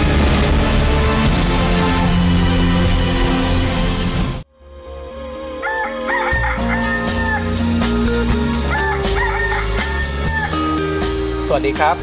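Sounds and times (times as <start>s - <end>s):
synth theme music with bass: 0.0s - 12.0s
rooster crowing: 5.4s - 7.7s, 8.6s - 10.7s.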